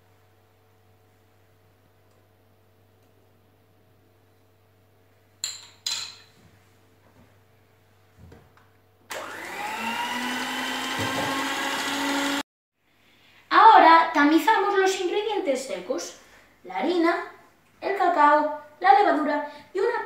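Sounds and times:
electric hand mixer beating batter: 0:09.1 - 0:12.4.

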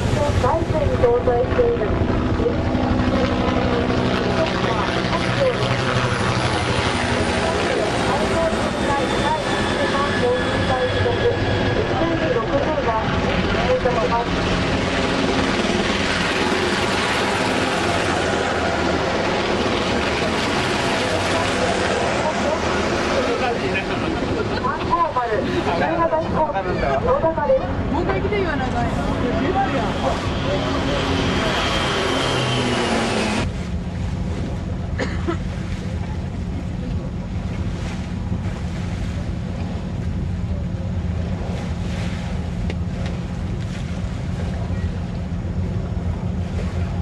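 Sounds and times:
people talking: 0:00.0 - 0:15.2, 0:17.8 - 0:32.2
helicopter flying past: 0:00.0 - 0:35.0.

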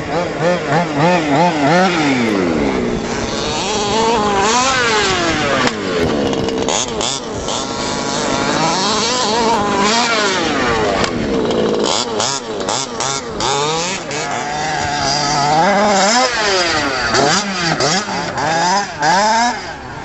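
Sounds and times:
small two-stroke engine revving: 0:00.0 - 0:20.0.

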